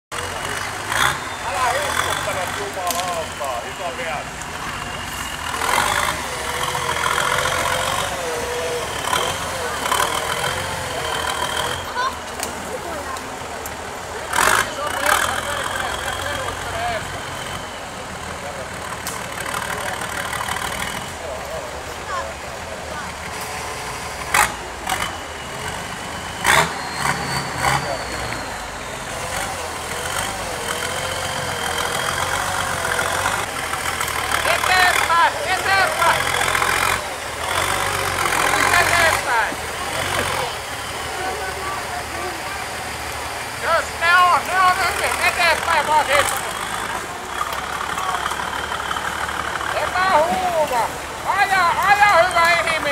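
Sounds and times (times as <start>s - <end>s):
off-road vehicle engine revving: 0.0s - 52.9s.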